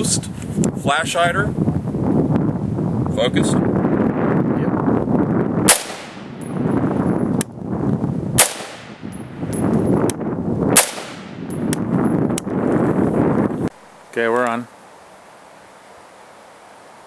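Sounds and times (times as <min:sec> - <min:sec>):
rifle shots: 0:05.7 - 0:06.4, 0:08.4 - 0:09.1, 0:10.8 - 0:11.5.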